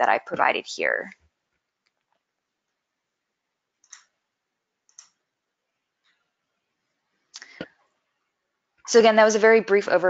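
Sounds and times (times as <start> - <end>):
computer mouse clicks: 3.8 - 4.2, 4.8 - 5.2.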